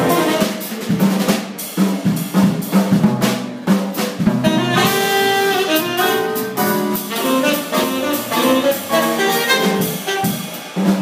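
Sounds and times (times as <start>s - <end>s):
jazz drum kit: 0.0s - 11.0s
tenor saxophone phrases: 4.4s - 10.3s.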